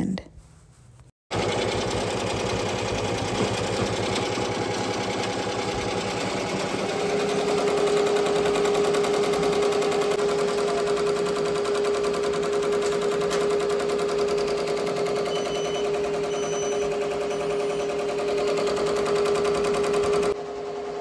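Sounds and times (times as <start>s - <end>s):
embroidery machine rattling: 1.3s - 20.4s.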